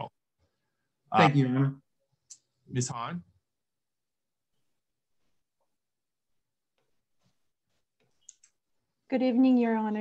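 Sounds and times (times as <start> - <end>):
faint clicks: 8.0 - 8.6.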